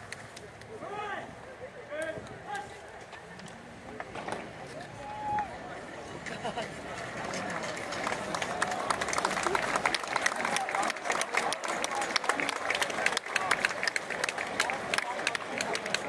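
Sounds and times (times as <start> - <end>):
voices chattering: 0.0 - 16.0
crowd clapping: 6.5 - 16.0.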